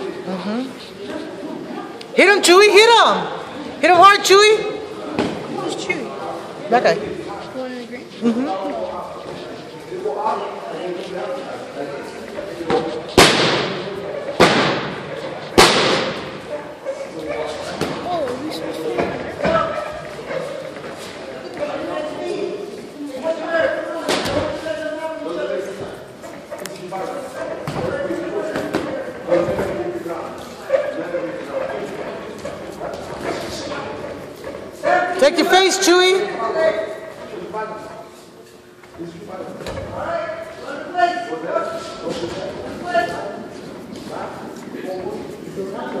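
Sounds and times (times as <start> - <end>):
voices in a gym: 0.0 - 46.0
sharp slaps echoing in a hall: 12.7 - 16.5.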